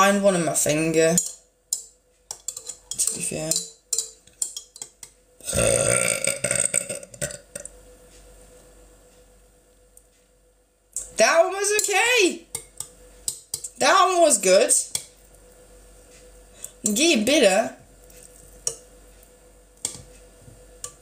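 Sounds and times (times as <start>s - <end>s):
woman's voice: 0.0s - 1.2s, 3.0s - 3.6s, 11.2s - 12.5s, 13.8s - 14.9s, 16.8s - 17.8s
long loud burp: 5.4s - 7.7s.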